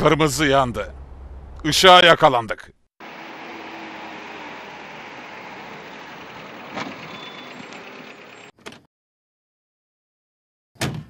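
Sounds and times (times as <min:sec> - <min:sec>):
car engines running: 0:03.0 - 0:08.5.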